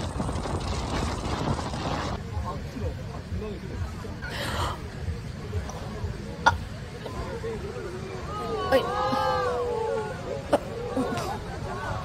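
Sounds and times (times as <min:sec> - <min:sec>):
wind buffeting microphone: 0:00.0 - 0:04.2.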